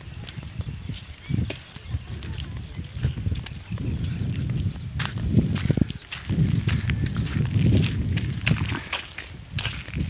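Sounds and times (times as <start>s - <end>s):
small birds chirping: 0.0s - 10.0s
wind buffeting microphone: 0.0s - 10.0s.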